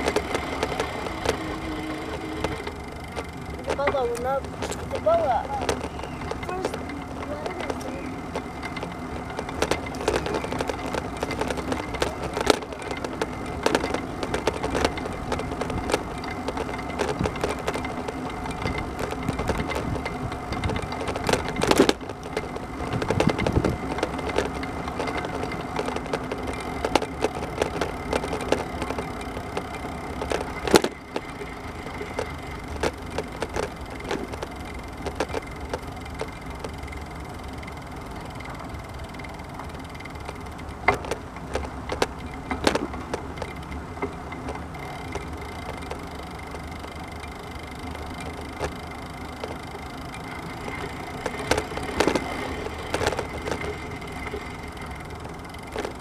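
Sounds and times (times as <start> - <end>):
wheels rolling on asphalt: 0.0 - 56.0.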